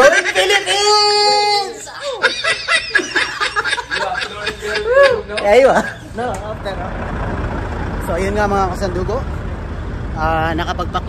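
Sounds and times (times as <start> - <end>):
man chuckling: 1.9 - 6.2.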